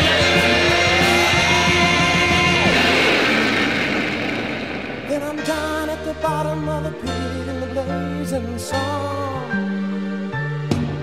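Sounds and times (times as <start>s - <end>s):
electric guitar in rock music: 0.0s - 11.0s.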